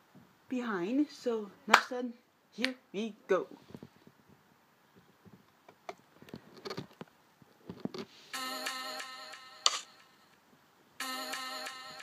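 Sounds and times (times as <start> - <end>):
electronic pop music: 8.4 - 10.2, 11.0 - 12.0
sharp click: 9.6 - 9.9.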